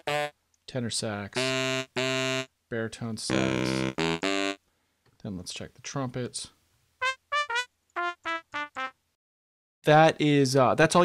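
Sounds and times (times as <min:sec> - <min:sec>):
trumpet playing short notes: 0:00.0 - 0:00.3, 0:01.4 - 0:02.5, 0:03.3 - 0:04.6, 0:07.0 - 0:08.9.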